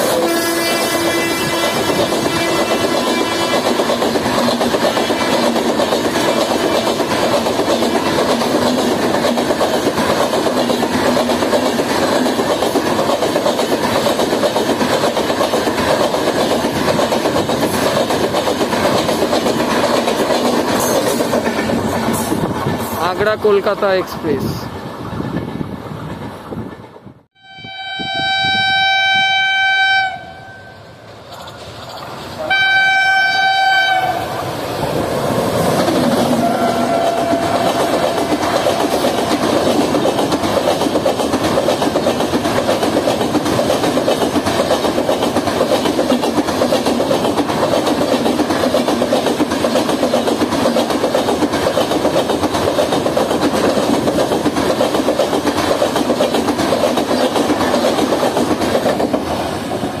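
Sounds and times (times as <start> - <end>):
train coaches rushing past: 0.0 - 60.0
locomotive horn: 0.1 - 3.6, 27.4 - 30.8, 32.4 - 34.3, 36.4 - 37.9.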